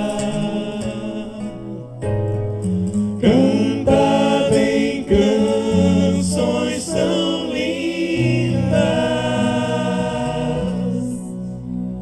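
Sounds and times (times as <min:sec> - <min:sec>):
voices singing a hymn: 0:00.0 - 0:02.1, 0:03.2 - 0:12.0
sustained low accompaniment: 0:00.0 - 0:12.0
lead voice on microphone: 0:03.2 - 0:11.3.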